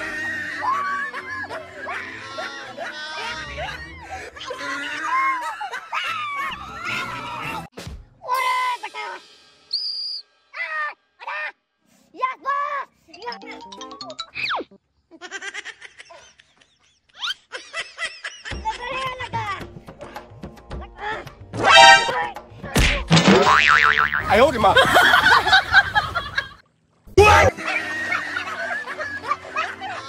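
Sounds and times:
high whistle-like tone: 9.7s - 10.3s
cartoon thump: 22.8s - 24.3s
springy warbling boing: 23.3s - 24.4s
cartoon voice cries: 27.2s - 27.8s.

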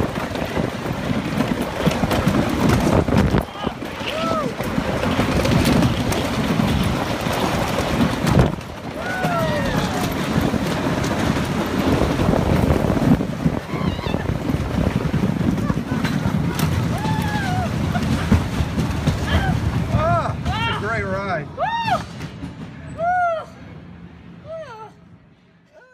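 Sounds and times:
wind rushing past microphone: 0.0s - 20.7s
roller coaster rumble and clatter: 0.0s - 25.9s
riders whooping: 1.8s - 20.9s.

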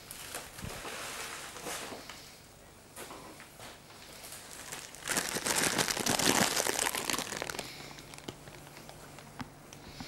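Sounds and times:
packaging crumpling and rustling: 4.1s - 9.4s.

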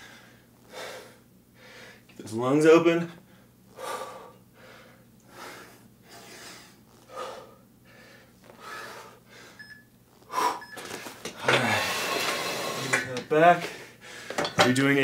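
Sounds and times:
man breathing hard: 0.0s - 2.1s, 3.2s - 9.6s, 10.3s - 13.0s, 13.6s - 14.5s
man sighing: 11.4s - 12.2s.

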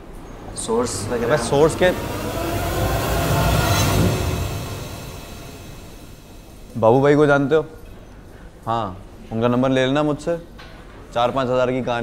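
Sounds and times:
rumbling sound effect: 0.4s - 6.8s.

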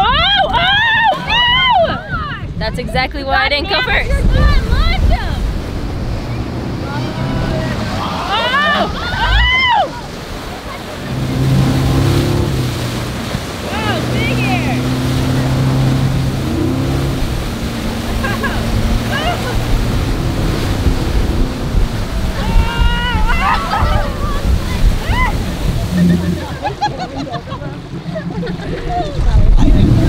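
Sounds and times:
wind on microphone: 0.0s - 27.0s, 28.0s - 30.0s
boat engine running: 0.0s - 30.0s
rushing wake water: 0.0s - 30.0s.

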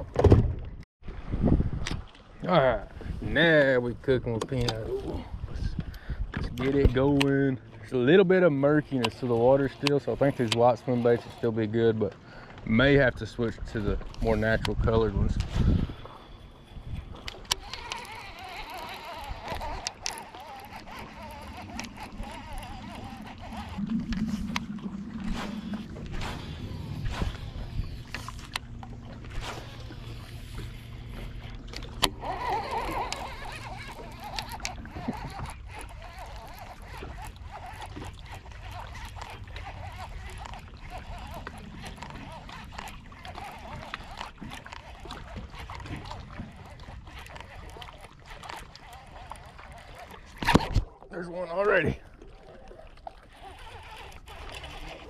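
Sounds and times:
water lapping: 1.0s - 55.0s
fishing reel and rod clicks: 4.3s - 5.1s, 5.8s - 7.5s, 8.1s - 51.8s, 52.4s - 55.0s
electric motor humming: 17.2s - 45.8s.

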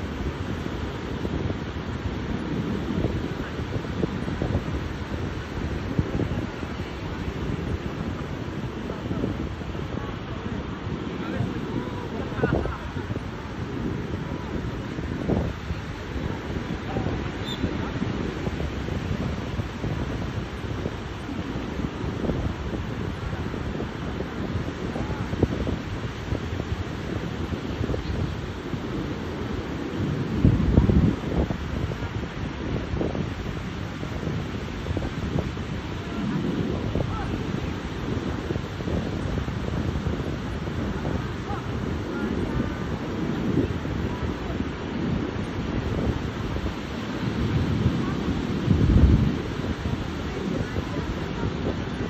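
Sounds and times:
ocean surf breaking: 0.0s - 52.0s
wind on microphone: 0.0s - 52.0s.

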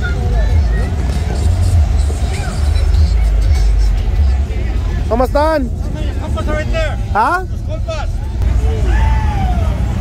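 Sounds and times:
car engine rumbling: 0.0s - 10.0s
crowd chatter: 0.0s - 10.0s.

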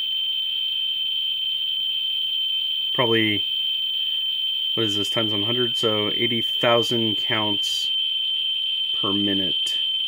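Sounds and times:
geiger counter high-pitched tone: 0.0s - 10.0s.

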